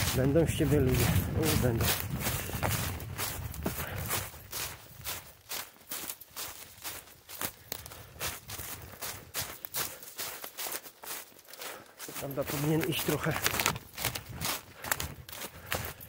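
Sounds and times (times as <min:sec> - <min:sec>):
footsteps in dry leaves: 0:00.0 - 0:16.0.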